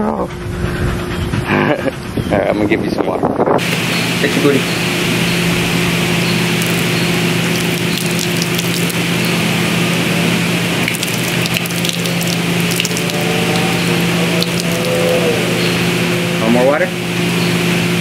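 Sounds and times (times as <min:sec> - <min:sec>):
mechanical hum and hiss: 0:00.0 - 0:18.0
dog lapping water: 0:06.4 - 0:09.4, 0:10.8 - 0:15.8
water spattering on concrete: 0:06.5 - 0:09.4, 0:10.8 - 0:15.0.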